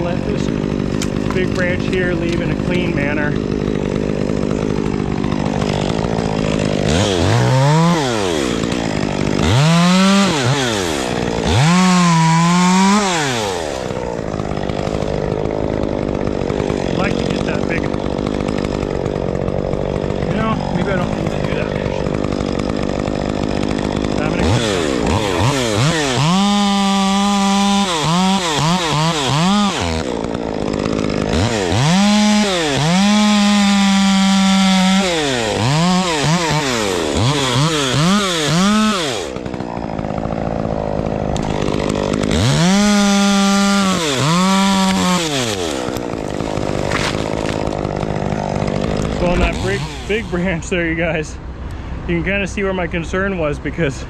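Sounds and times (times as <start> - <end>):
chainsaw cutting branch: 0.0 - 51.2.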